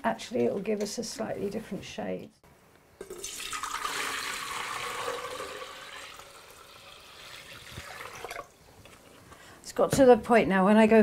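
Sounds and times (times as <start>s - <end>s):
liquid pouring into a pot: 3.0s - 8.6s.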